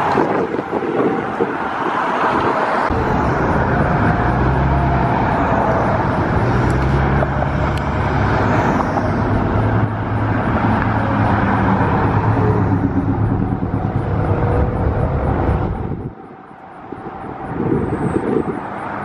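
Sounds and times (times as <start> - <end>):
loud rumbling with low hum: 2.9 - 16.3.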